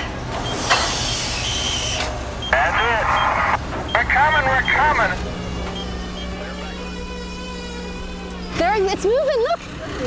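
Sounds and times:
hiss of hydraulic fluid: 0:00.5 - 0:02.1
hydraulic pump humming: 0:03.7 - 0:09.4.

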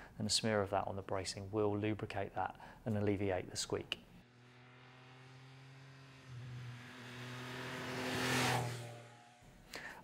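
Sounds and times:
motorcycle passing by: 0:04.2 - 0:09.7.

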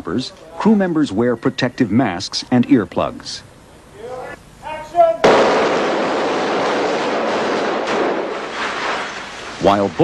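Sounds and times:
sharp bang: 0:05.2 - 0:09.1
glass shattering: 0:06.0 - 0:09.6.

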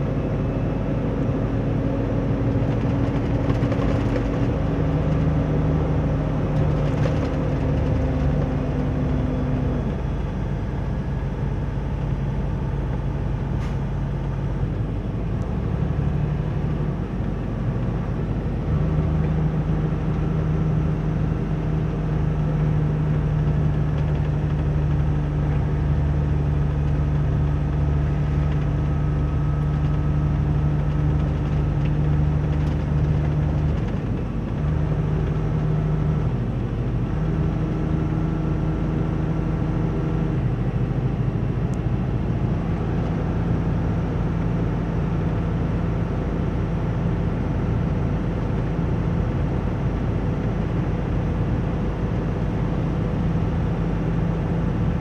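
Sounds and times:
road noise: 0:00.0 - 0:55.0
truck engine droning: 0:00.0 - 0:55.0.

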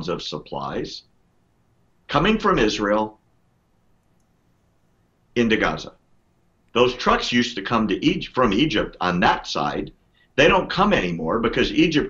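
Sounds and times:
man speaking: 0:00.0 - 0:01.1, 0:02.1 - 0:03.2, 0:05.4 - 0:06.0, 0:06.8 - 0:12.0.

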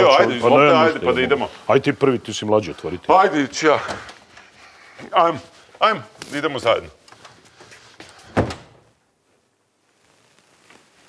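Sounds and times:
door shutting thud: 0:08.3 - 0:08.8.

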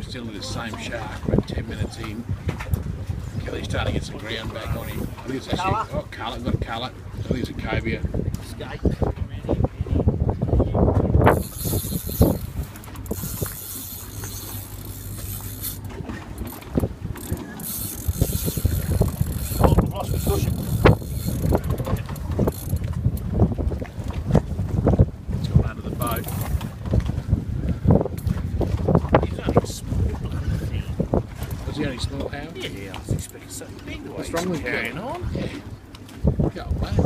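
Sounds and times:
fishing reel whirring and clicking: 0:04.4 - 0:05.2, 0:11.2 - 0:23.3, 0:26.0 - 0:27.1.

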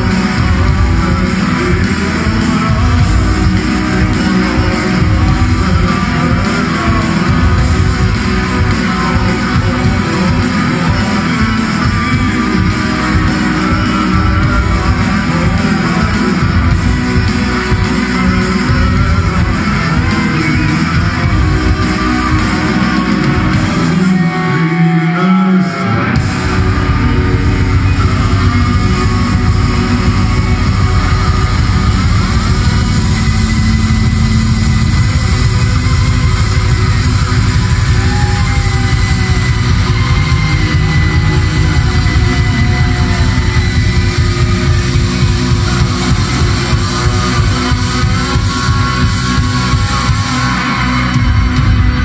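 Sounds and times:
bass: 0:00.0 - 0:52.0
drums with fast beat: 0:00.0 - 0:52.0
electric guitars: 0:00.0 - 0:52.0
keyboards: 0:00.0 - 0:52.0.

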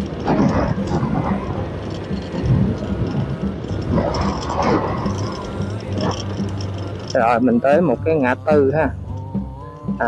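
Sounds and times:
motorbike engine: 0:00.0 - 0:10.0
music with repeating bass beat: 0:00.0 - 0:10.0
road noise: 0:00.0 - 0:10.0.

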